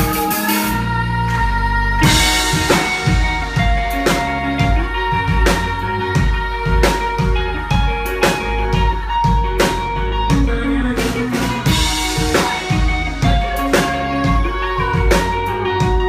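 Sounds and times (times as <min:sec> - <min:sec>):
drum kit beat: 0:00.0 - 0:01.0, 0:02.0 - 0:16.0
bass: 0:00.0 - 0:16.0.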